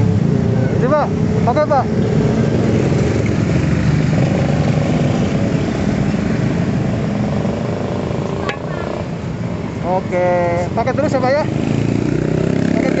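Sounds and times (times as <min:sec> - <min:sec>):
traffic engines passing: 0:00.0 - 0:13.0.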